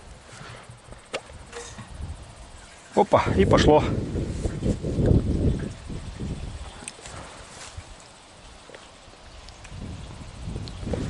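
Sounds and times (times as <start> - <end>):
hose handling noises: 0.2 - 9.9.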